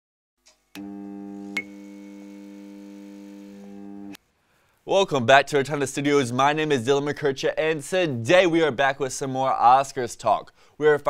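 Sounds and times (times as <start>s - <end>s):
electronic hum: 0.8s - 4.2s.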